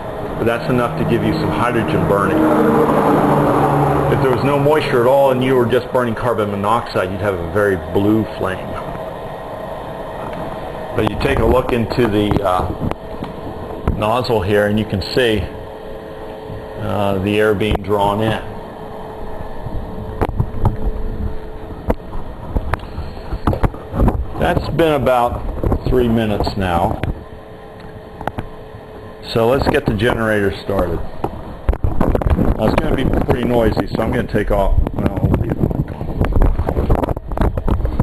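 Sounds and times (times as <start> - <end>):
electric blower whirring: 0.0 - 5.4
electric blower running: 0.0 - 27.2
faint steady hum: 0.0 - 38.0.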